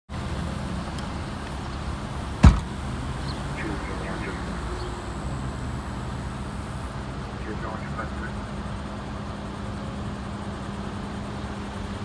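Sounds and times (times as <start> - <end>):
road traffic rumble: 0.1 - 12.0.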